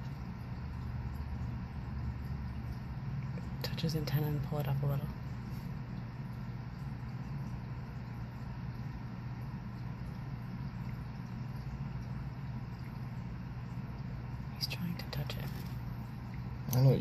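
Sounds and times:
aquarium equipment humming: 0.0 - 17.0.

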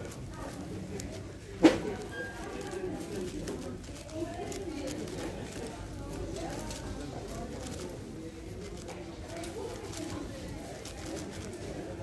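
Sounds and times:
puzzle cube clicking and rattling: 0.0 - 11.8
low background murmur: 0.0 - 12.0.

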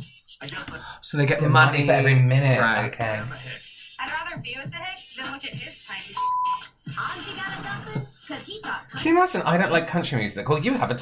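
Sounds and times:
background music: 0.0 - 11.0
person speaking: 0.4 - 3.6
censor bleep: 6.2 - 6.6.

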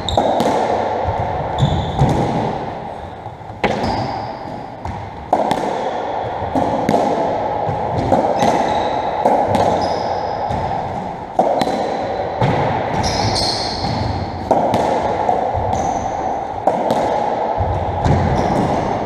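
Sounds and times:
shoes squeaking on wooden floor: 1.6 - 2.0, 3.6 - 4.6, 13.0 - 14.0
ball cracking off rackets and walls: 3.5 - 18.9.

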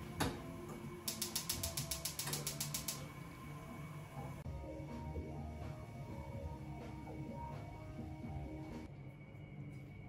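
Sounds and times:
gas stove igniter clicking: 1.0 - 3.2
stove control click: 1.1 - 3.1.

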